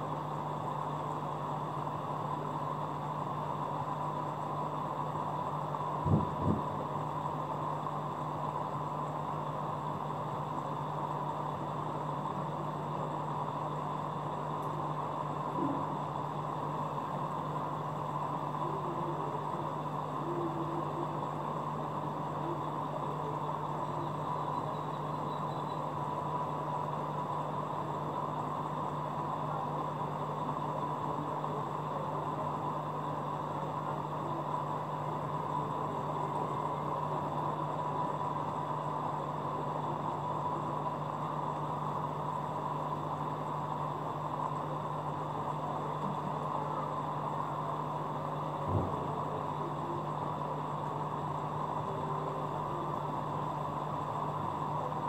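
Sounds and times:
aquarium pump humming: 0.0s - 55.0s.

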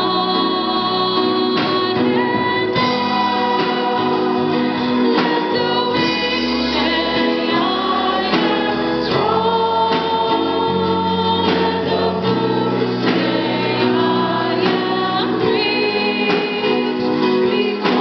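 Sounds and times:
choir singing gospel: 0.0s - 18.0s
keyboard accompaniment: 0.0s - 18.0s.

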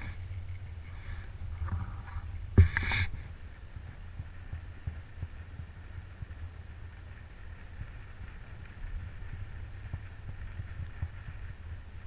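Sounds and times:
low muffled rumble: 0.0s - 12.0s.

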